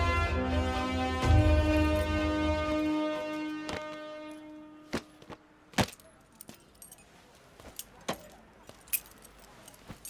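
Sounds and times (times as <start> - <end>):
keys jingling: 5.8 - 10.0.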